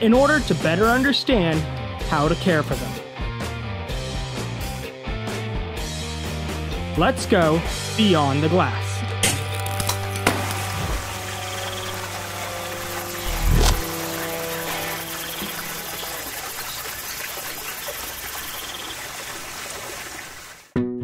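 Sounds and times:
waterfall rushing: 10.4s - 20.7s
held music notes: 11.2s - 17.0s.

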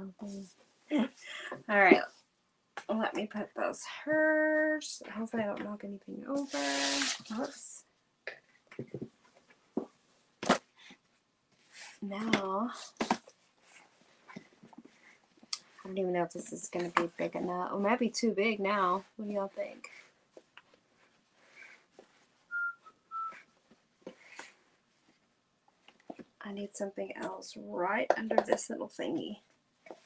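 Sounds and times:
person whistling short high notes: 22.5s - 23.4s.

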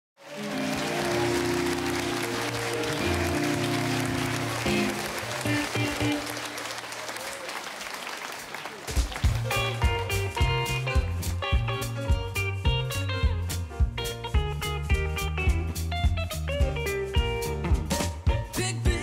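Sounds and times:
audience applauding and cheering: 0.2s - 11.5s
sustained band chords: 0.3s - 6.7s
drums and electric guitar hits: 8.9s - 19.0s.

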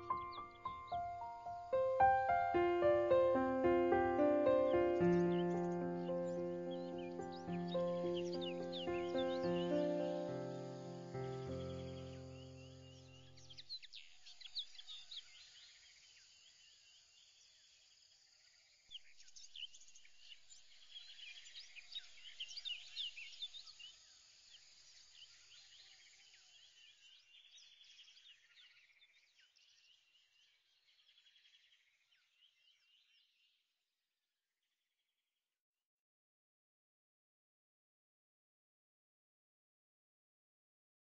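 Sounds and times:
small birds chirping: 0.0s - 17.8s, 18.4s - 33.6s.

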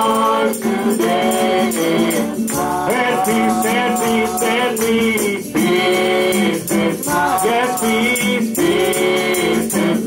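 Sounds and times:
gospel singing: 0.0s - 10.0s
tambourine jingling: 0.0s - 10.0s.

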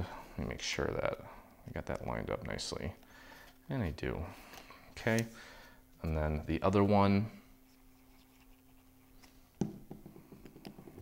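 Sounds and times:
glue bottle tapping on mat: 9.6s - 11.0s.

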